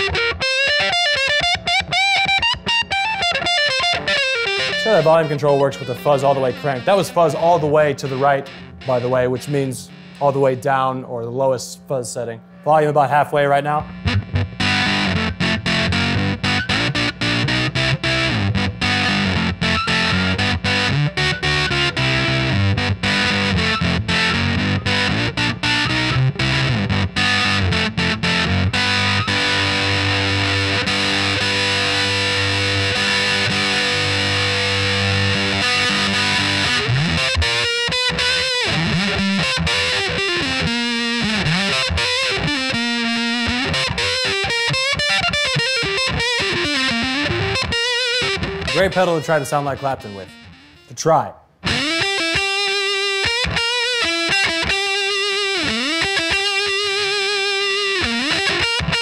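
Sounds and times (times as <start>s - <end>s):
distorted electric guitar: 0.0s - 59.0s.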